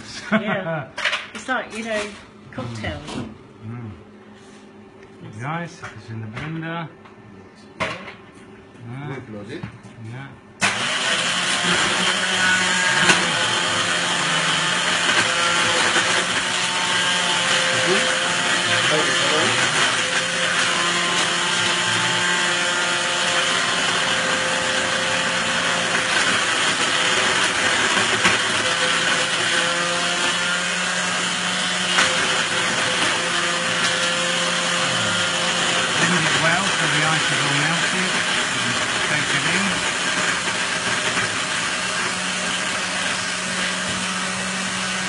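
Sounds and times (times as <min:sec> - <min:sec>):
blender blending ice: 0:00.0 - 0:04.6, 0:10.6 - 0:45.0.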